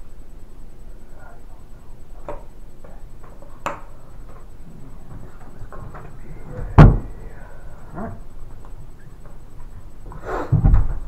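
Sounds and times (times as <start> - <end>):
deep thump on table: 6.8 - 7.1.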